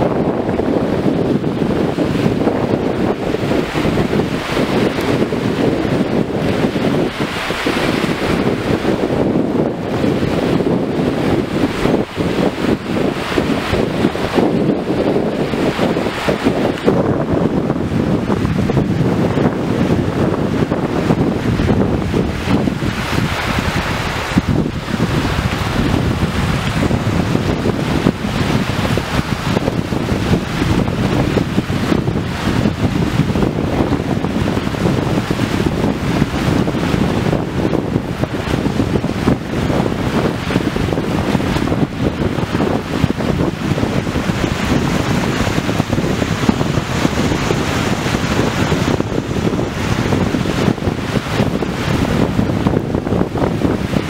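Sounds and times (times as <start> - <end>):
small waves washing ashore: 0.0 - 54.0
wind buffeting microphone: 0.0 - 54.0.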